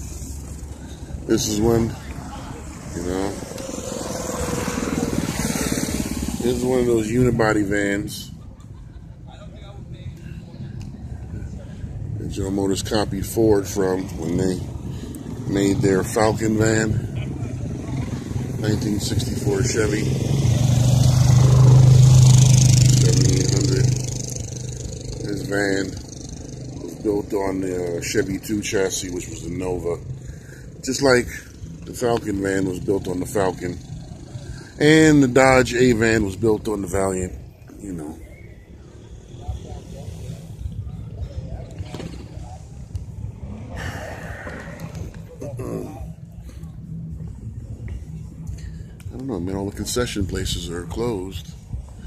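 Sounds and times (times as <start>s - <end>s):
steady low rumble: 0.0s - 20.0s, 23.0s - 52.0s
faint voices talking: 0.0s - 20.3s, 21.3s - 52.0s
vehicle engine droning: 0.0s - 52.0s.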